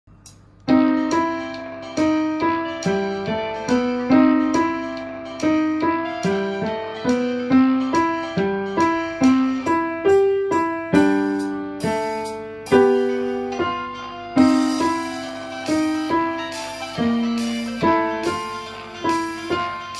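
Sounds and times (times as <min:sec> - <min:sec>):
upright piano playing chords: 0:00.1 - 0:19.9.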